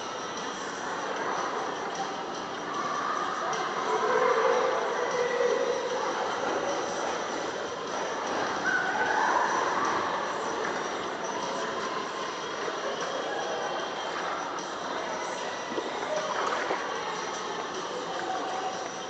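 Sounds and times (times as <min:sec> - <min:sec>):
faint distant voices: 0:00.0 - 0:19.0
echoing water splashing: 0:15.2 - 0:18.6.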